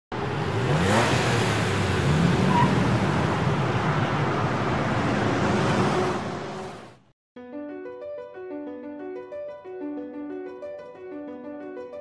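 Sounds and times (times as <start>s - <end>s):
car engine revving: 0.1s - 7.0s.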